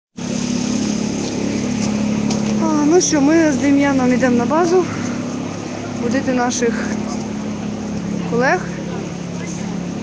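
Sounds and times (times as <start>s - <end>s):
engine hum: 0.2s - 10.0s.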